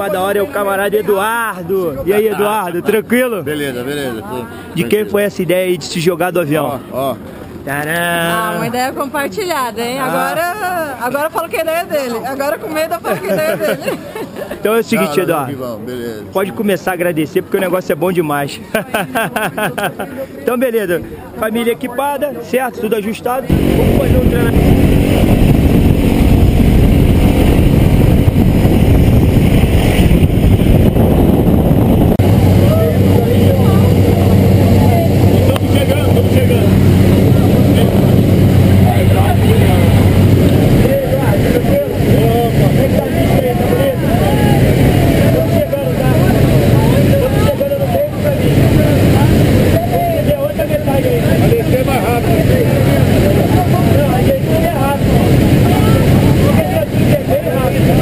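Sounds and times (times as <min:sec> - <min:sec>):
voices talking: 0:00.0 - 0:28.0, 0:32.2 - 0:58.0
propeller engine drone: 0:23.5 - 0:58.0.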